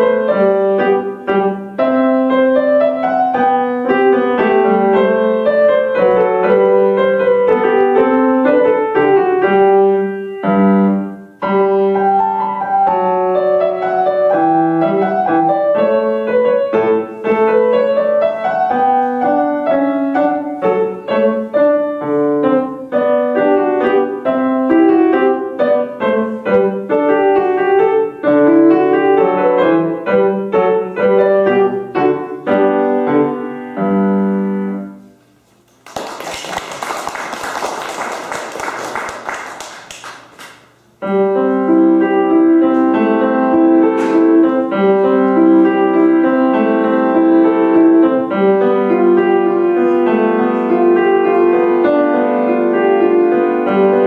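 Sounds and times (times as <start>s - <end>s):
solo piano piece: 0.0s - 35.4s, 36.1s - 54.0s
audience applause: 35.8s - 40.6s.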